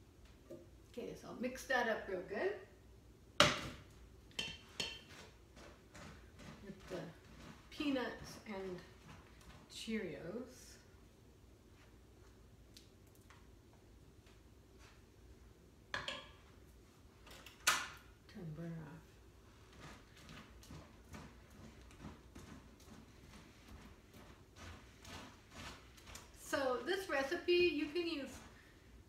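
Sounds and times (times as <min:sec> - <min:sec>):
wooden spoon stirring sticky mixture: 0:04.3 - 0:12.5, 0:19.0 - 0:29.0.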